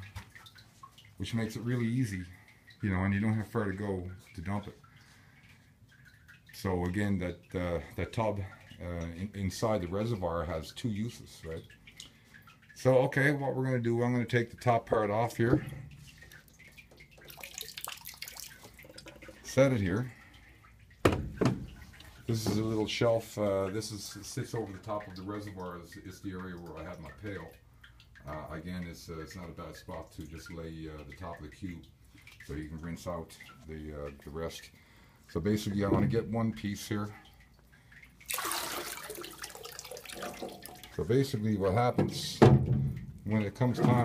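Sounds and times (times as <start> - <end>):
small splashes into tank: 0.0 - 44.0
water trickling and dripping: 0.0 - 44.0.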